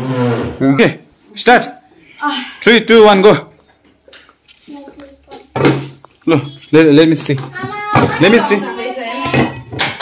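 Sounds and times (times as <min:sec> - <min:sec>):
family voices: 0:01.3 - 0:09.8.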